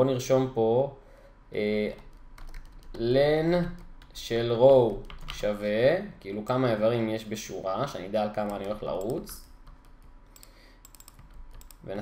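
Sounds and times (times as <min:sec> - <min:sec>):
computer keyboard keystrokes: 0:02.0 - 0:03.0, 0:03.8 - 0:05.5, 0:08.4 - 0:11.9.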